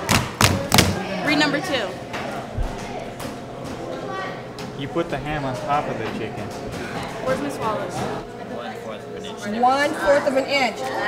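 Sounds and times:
faint chatter: 0.5s - 11.0s.

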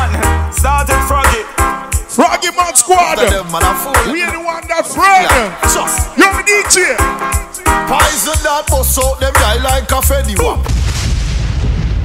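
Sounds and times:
dancehall singing and bass: 0.0s - 10.7s
explosion sound effect: 10.6s - 12.0s.

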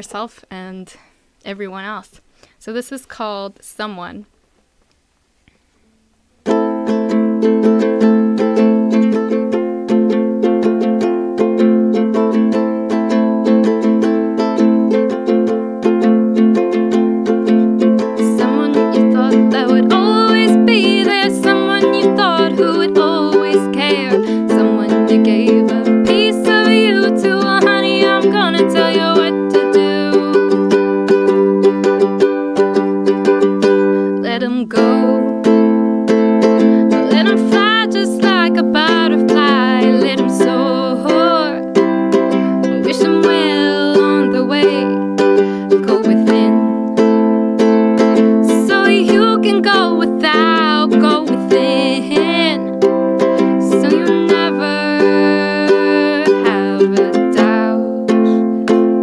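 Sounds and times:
ukulele strumming chords: 6.4s - 59.0s
woman singing: 17.8s - 32.9s, 33.5s - 35.8s, 36.5s - 47.0s, 48.3s - 58.5s.

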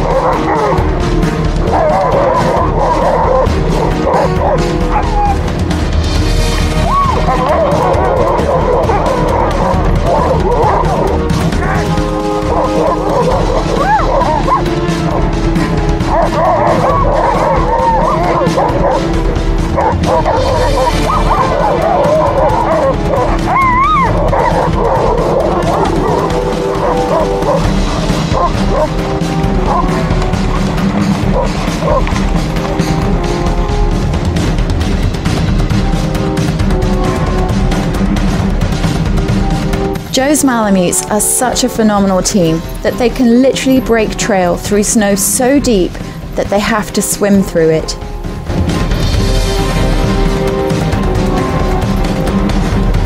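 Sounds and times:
sled dogs whining and yipping: 0.0s - 34.0s
background music: 0.0s - 53.0s.

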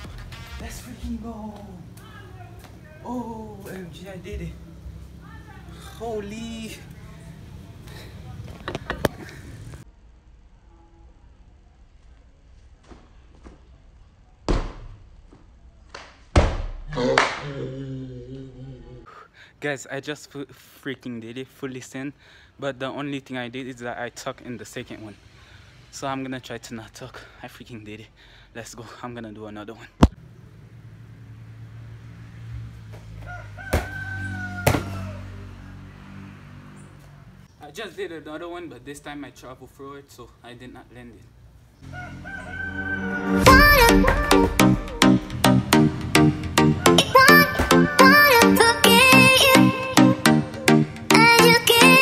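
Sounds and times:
rooster crowing: 33.1s - 35.8s, 41.8s - 44.2s.

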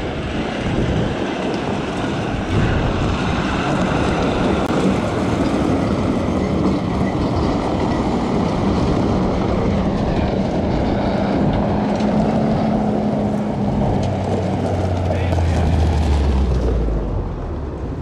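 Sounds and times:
steady engine hum: 0.0s - 18.0s
truck diesel engine running: 0.0s - 18.0s.

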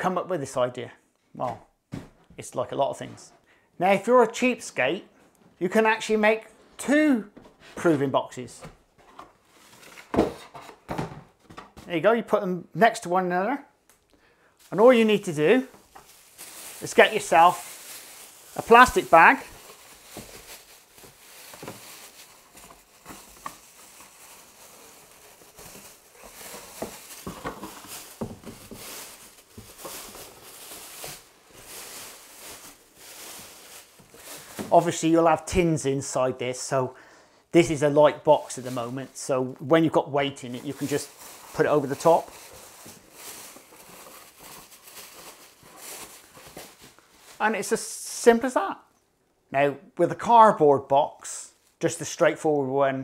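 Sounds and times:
plastic bag rustling: 9.3s - 10.7s, 14.4s - 35.5s, 37.7s - 47.9s.

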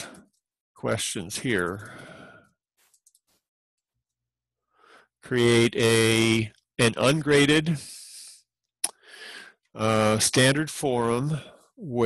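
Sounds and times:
faint keyboard clicks: 1.7s - 2.2s, 2.8s - 3.3s
breathy exhale: 1.8s - 2.5s, 9.0s - 9.6s
man's voice: 5.3s - 8.2s, 9.8s - 12.0s.

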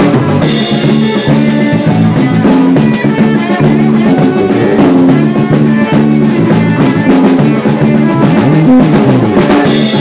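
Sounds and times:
blues trio playing: 0.0s - 10.0s.

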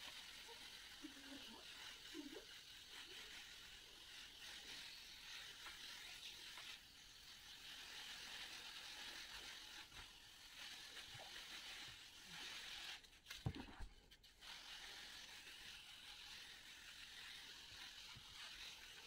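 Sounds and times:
pressure sprayer hissing: 0.0s - 12.9s.

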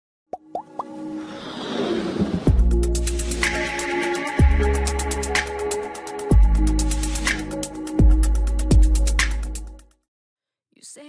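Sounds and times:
quick pops rising in pitch: 0.3s - 1.0s.

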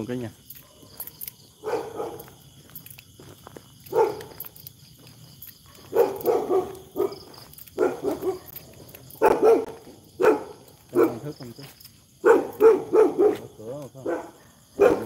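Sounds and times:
insects chirping: 0.0s - 15.0s
dog barking: 0.6s - 2.4s, 3.9s - 4.5s, 5.6s - 11.4s, 12.2s - 15.0s.

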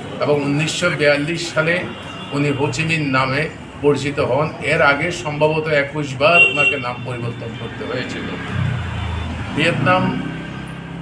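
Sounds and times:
man speaking: 0.1s - 8.7s, 9.5s - 10.4s.

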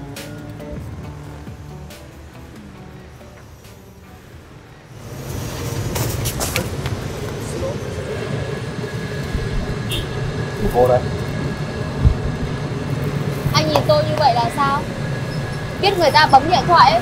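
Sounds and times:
traffic rumble and hiss: 0.0s - 17.0s.

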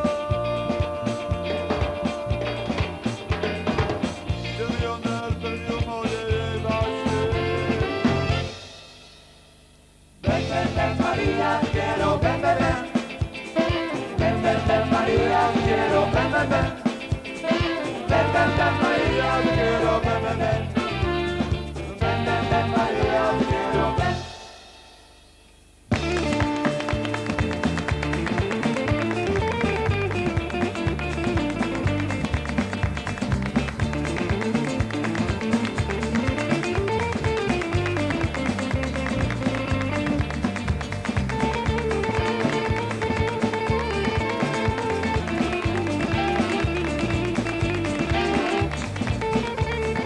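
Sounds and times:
live band playing dance tune: 0.0s - 50.0s
saxophones holding long notes: 17.4s - 27.2s.

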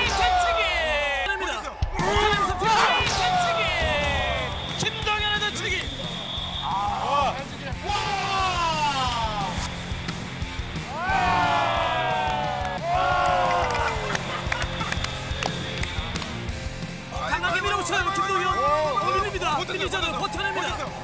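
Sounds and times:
background music: 0.0s - 21.0s
onlookers shouting and laughing: 10.9s - 15.2s.

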